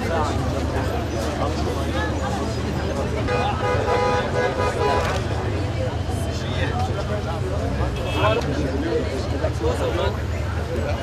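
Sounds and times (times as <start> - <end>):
crowd chatter: 0.0 - 11.0
low street rumble: 0.0 - 11.0
vehicle horn: 3.3 - 5.1.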